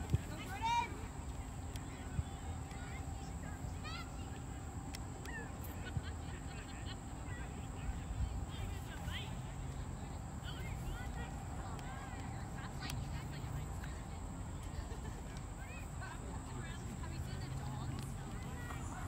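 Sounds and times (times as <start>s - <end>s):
faint distant voices calling: 0.0s - 19.0s.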